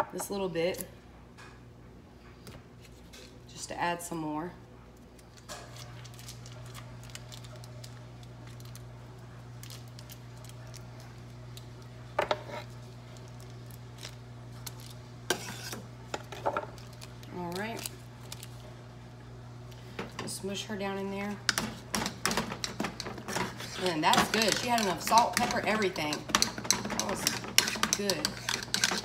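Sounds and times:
steady low hum: 0.0s - 29.0s
utensils clinking on saucepan and dishes: 21.5s - 29.0s.

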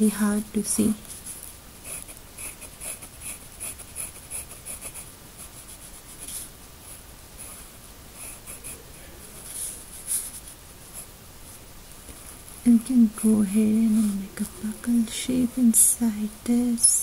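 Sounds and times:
pencil scratching on paper: 1.2s - 7.6s, 8.2s - 8.8s.

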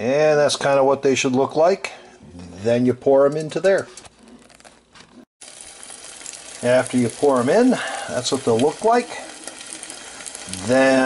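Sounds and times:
egg sizzling in frying pan: 5.4s - 11.0s.

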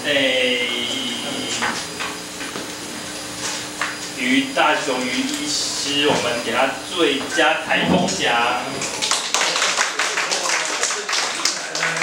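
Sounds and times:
faint voices: 4.2s - 12.0s
audience applauding: 8.8s - 12.0s.

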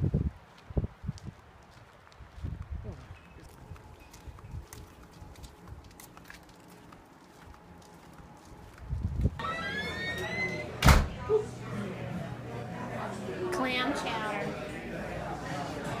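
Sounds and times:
quiet footsteps: 0.0s - 9.4s
door opening: 9.4s - 11.4s
indoor voices: 9.4s - 16.0s
door banging shut: 9.8s - 11.2s.

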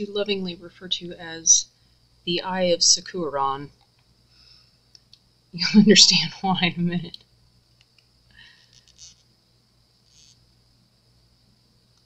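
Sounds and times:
faint high whine: 0.0s - 12.0s.

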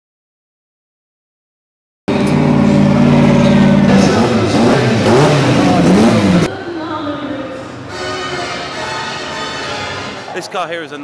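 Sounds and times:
race car engine revving: 2.1s - 6.5s.

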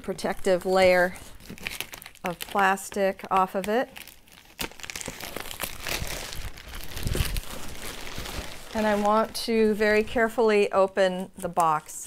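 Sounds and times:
plastic shrink-wrap crinkling: 0.0s - 10.7s.

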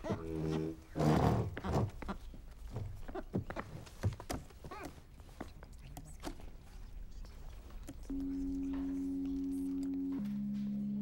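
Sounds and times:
chair squeak: 0.0s - 2.2s.

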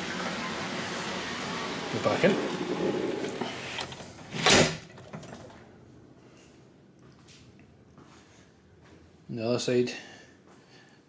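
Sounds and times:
door whooshing and banging shut: 2.4s - 5.5s.

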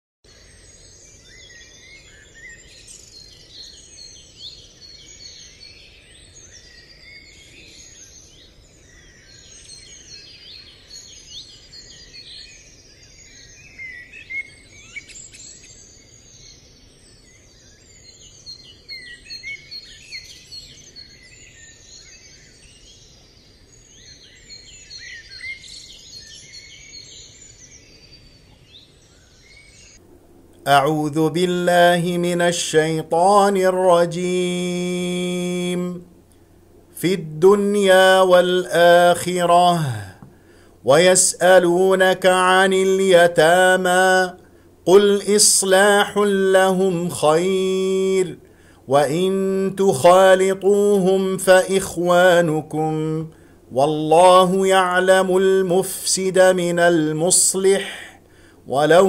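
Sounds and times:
songbirds chirping and singing: 0.3s - 59.0s.

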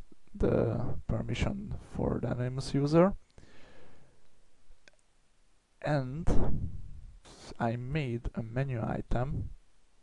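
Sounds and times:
man speaking: 0.3s - 3.2s, 5.8s - 9.6s.

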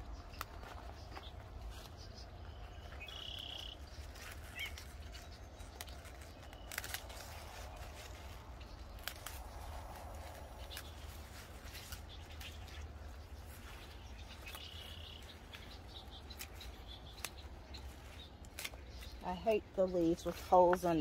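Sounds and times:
bird chirping: 0.0s - 21.0s
leaves rustling: 0.0s - 21.0s
garden snips cutting stems: 4.0s - 12.9s, 14.4s - 21.0s.

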